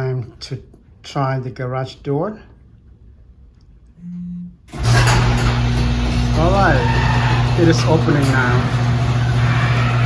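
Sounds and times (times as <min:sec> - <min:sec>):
garage door opener motor humming: 0:04.7 - 0:10.0.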